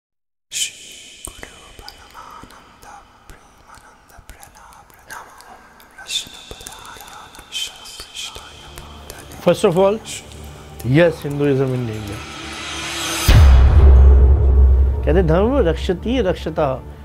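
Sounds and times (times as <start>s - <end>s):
person whispering: 0.5s - 12.7s
faint hiss: 0.5s - 13.3s
thin steady high tone: 6.0s - 13.3s.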